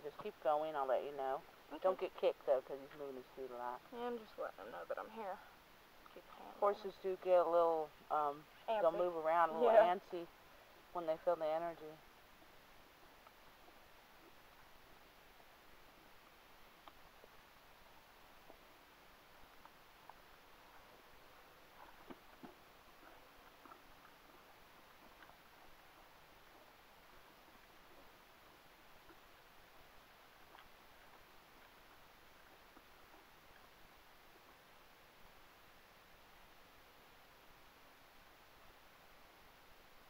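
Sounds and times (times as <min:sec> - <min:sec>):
faint steady hiss: 0:00.0 - 0:40.0
faint ticks: 0:13.1 - 0:14.7, 0:16.0 - 0:18.7, 0:19.4 - 0:20.4, 0:21.8 - 0:34.6.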